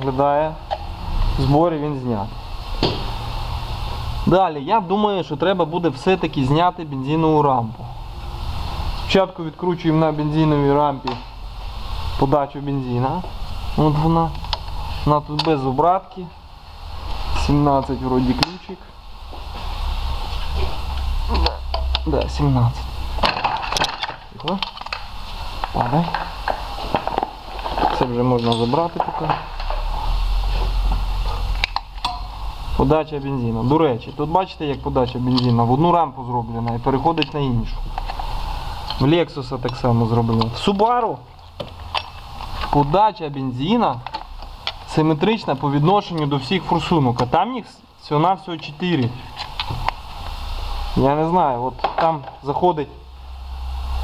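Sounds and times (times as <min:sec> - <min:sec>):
low rumble with hiss: 0:00.0 - 0:54.0
low hum: 0:05.2 - 0:40.7.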